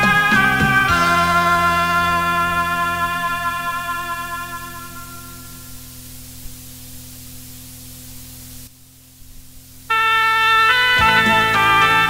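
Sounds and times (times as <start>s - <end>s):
cassette tape hiss: 0.0s - 12.0s
low mains hum: 0.0s - 12.0s.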